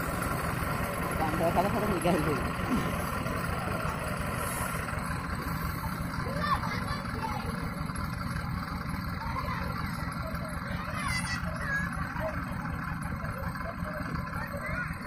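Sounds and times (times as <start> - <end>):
faint voices: 0.0 - 15.0
tractor engine running: 0.0 - 15.0.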